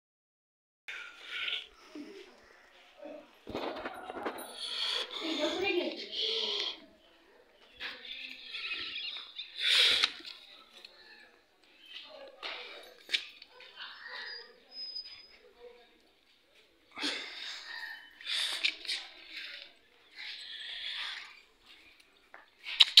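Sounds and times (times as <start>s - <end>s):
indistinct voices talking: 0.9s - 23.0s.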